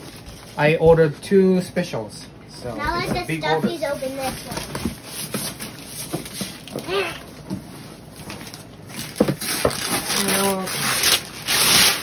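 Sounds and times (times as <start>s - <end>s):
newspaper rustling and crumpling: 3.8s - 6.8s, 8.0s - 12.0s.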